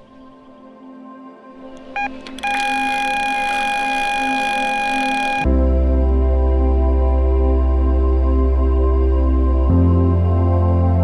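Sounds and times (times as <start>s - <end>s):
bite alarm beep: 2.0s - 5.5s
continuous high alarm tone: 2.0s - 5.5s.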